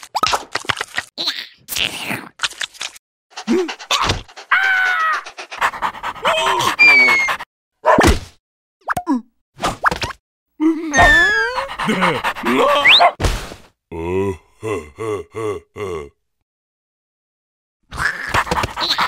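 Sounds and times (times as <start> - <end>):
squeaky babbling cartoon voices: 3.4 - 5.6, 6.2 - 7.4, 10.7 - 13.2.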